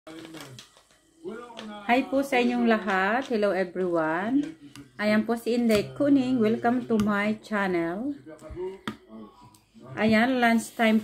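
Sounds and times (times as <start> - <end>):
woman speaking: 2.0 - 8.2, 10.0 - 11.0.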